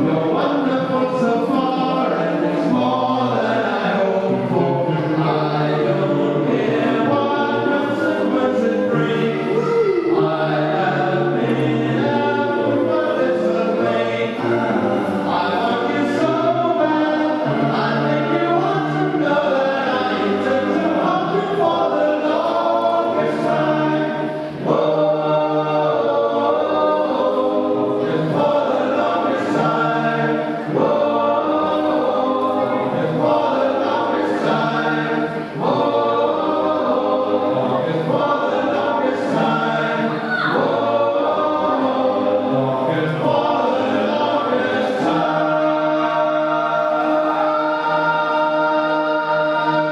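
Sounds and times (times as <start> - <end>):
choir singing: 0.0 - 49.9.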